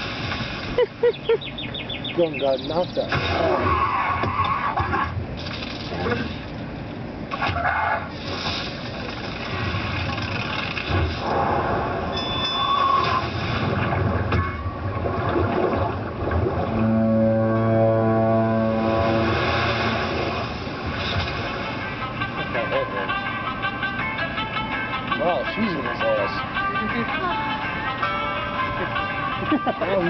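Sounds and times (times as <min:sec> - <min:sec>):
steady low tone: 0:13.8 - 0:29.4.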